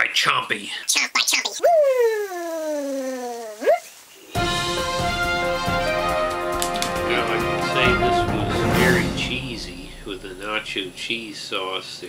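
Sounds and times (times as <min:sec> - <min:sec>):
man's falling ooo and yelp: 0:01.6 - 0:03.9.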